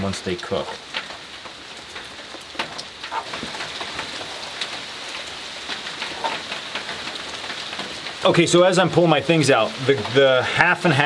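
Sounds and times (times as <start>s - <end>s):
rain on a metal roof: 0.0s - 11.0s.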